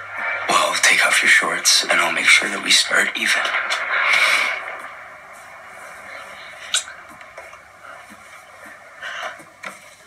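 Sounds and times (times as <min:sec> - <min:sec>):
low steady hiss: 0:00.0 - 0:10.0.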